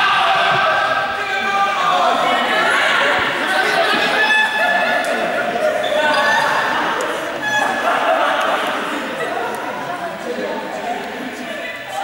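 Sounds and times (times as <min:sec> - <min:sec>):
players shouting: 0:00.0 - 0:09.9.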